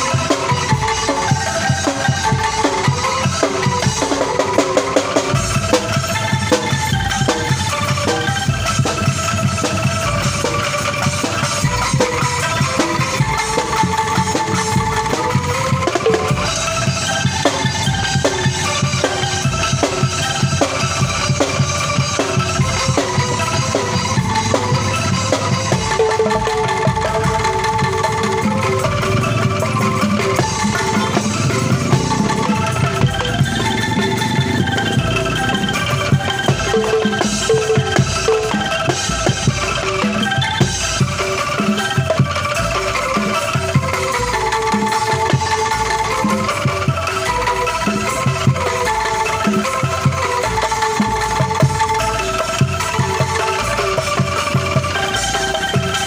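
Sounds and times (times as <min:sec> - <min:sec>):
shaken bamboo tubes melody: 0:00.0 - 0:56.0
low notes and knocks beat: 0:15.8 - 0:38.7.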